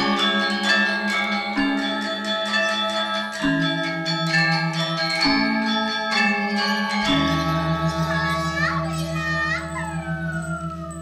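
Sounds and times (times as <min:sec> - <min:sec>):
sustained gong-like tones: 0:00.0 - 0:11.0.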